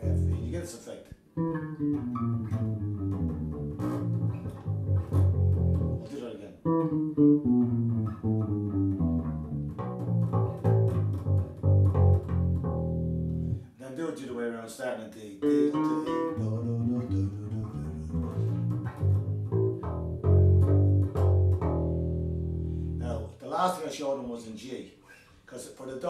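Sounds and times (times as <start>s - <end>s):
electric bass guitar riff: 0.0s - 0.6s, 1.4s - 13.7s, 15.4s - 23.3s.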